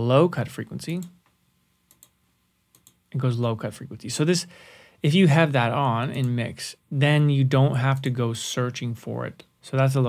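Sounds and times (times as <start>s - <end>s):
computer mouse clicks: 1.9s - 3.0s.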